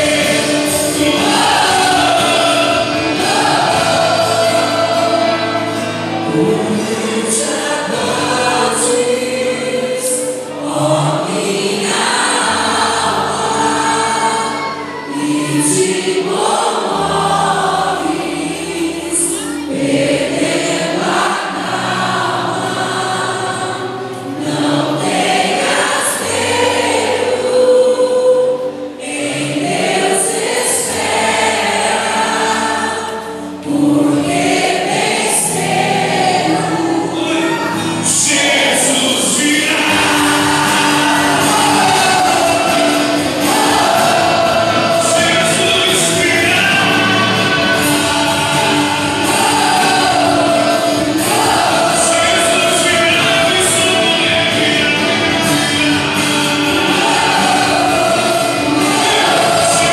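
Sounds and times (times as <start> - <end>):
many voices singing together: 0.0 - 59.9
praise band playing: 0.0 - 59.9.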